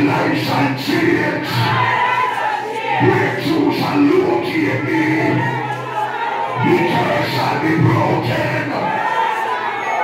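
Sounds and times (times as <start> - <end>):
group singing gospel song: 0.0 - 10.0.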